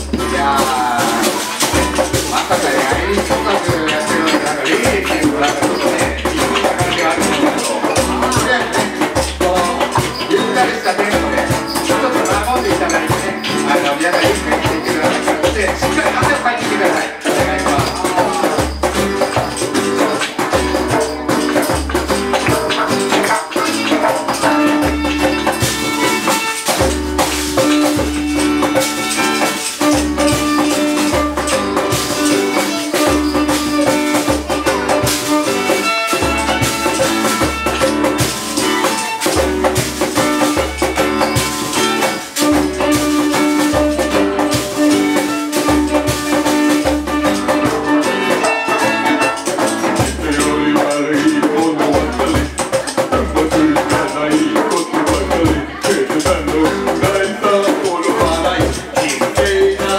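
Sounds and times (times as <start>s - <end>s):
hand drum beat: 0.0s - 59.9s
shaker rattling: 0.0s - 59.9s
strummed acoustic guitar: 0.0s - 59.9s.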